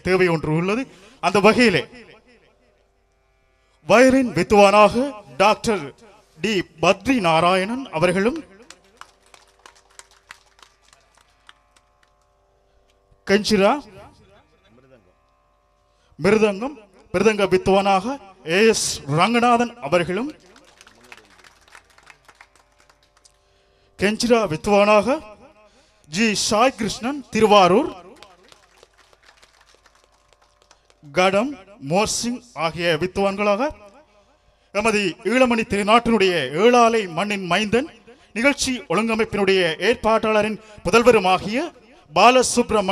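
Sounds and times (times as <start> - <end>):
light applause: 8.3 - 12.3, 20.2 - 23.4, 28.2 - 31.2
scattered handclaps: 8.3 - 12.3, 20.2 - 23.4, 28.1 - 31.1.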